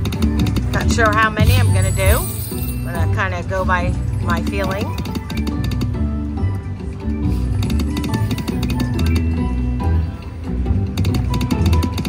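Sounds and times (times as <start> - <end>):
short chiming tones: 1.4 - 4.9
slot reels clicking: 7.3 - 9.4.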